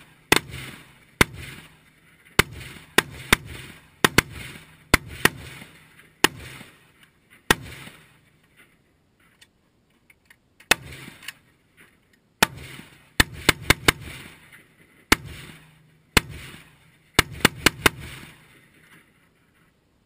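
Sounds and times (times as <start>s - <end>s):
rifle shots echoing: 0.0s - 8.4s, 10.7s - 11.6s, 12.4s - 19.0s.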